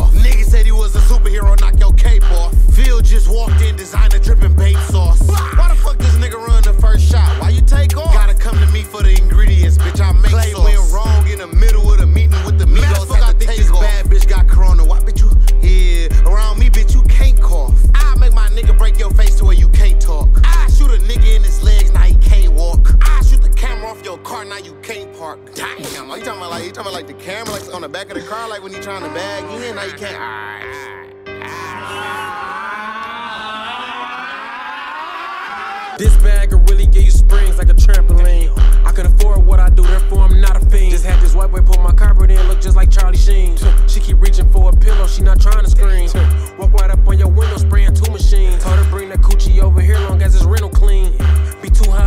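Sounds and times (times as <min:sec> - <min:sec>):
hi-hat ticks: 0:00.0 - 0:23.7, 0:36.0 - 0:52.0
heavy bass notes: 0:00.0 - 0:23.9, 0:36.0 - 0:52.0
rapping over a beat: 0:00.0 - 0:30.9, 0:36.0 - 0:52.0
wavering overlapping vocal sounds: 0:25.5 - 0:52.0.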